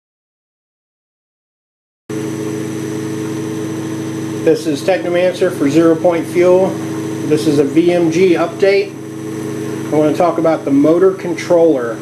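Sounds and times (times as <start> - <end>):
pulse motor humming: 2.1 - 12.0.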